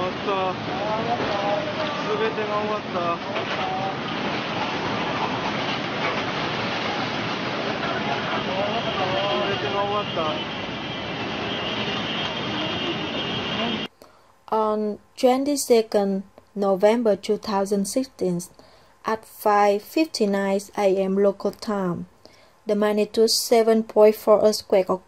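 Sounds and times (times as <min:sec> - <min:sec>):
rushing floodwater and debris: 0:00.0 - 0:13.9
faint high steady tone: 0:08.5 - 0:13.9.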